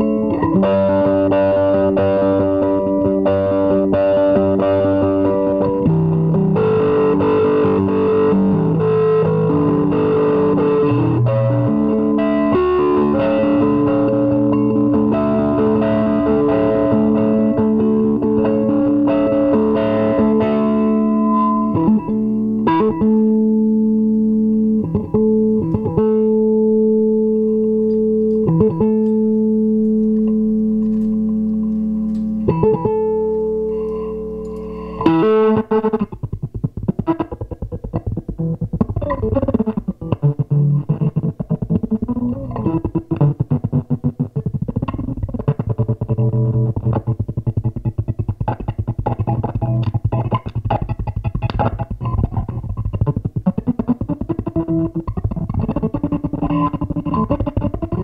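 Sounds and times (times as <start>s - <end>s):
electric guitar chords: 0.0s - 58.0s
percussive strikes on guitar: 0.0s - 58.0s.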